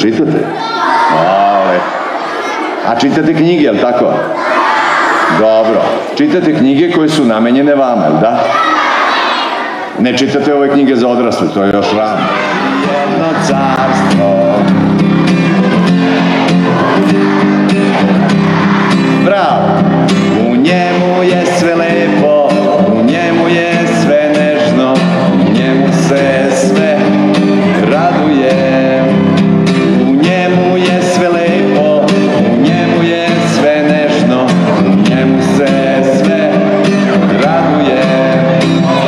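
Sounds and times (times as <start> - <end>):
acoustic guitar strumming: 9.8 - 39.0
man singing: 10.0 - 18.4, 19.0 - 39.0.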